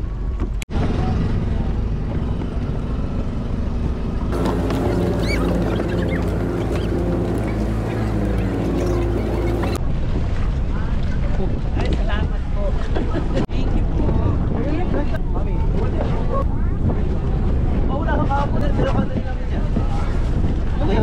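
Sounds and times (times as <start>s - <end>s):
wind buffeting microphone: 0.1s - 21.0s.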